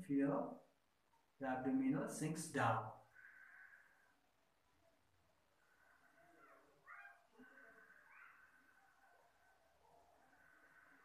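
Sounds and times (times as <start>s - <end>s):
distant animal calls: 3.0s - 4.6s, 5.7s - 11.0s.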